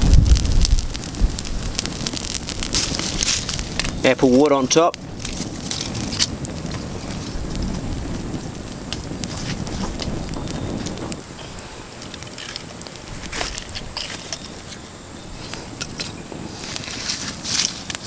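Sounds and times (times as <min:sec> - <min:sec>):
campfire crackling: 0:00.0 - 0:18.0
low rush of fire: 0:00.0 - 0:18.0.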